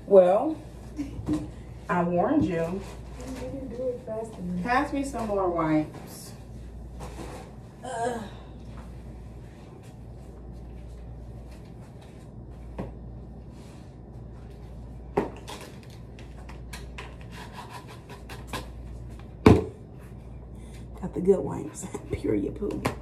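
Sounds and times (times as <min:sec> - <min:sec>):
low steady hum: 0:00.0 - 0:23.0.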